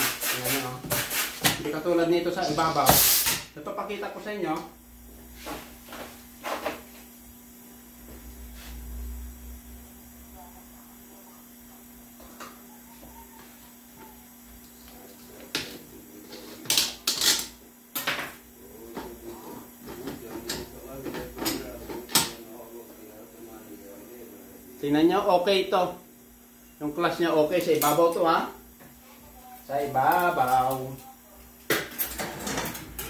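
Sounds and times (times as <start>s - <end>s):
low electrical hum: 0.0s - 33.0s.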